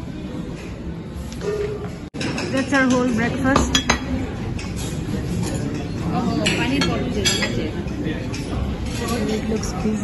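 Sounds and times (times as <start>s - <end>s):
crockery and cutlery clinking: 1.4s - 10.0s.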